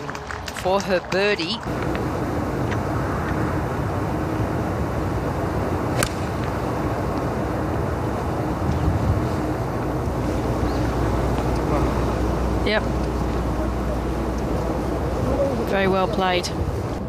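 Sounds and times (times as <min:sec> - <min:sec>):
wind rumbling on microphone: 0:01.7 - 0:13.6
golf club striking ball: 0:05.9 - 0:06.6.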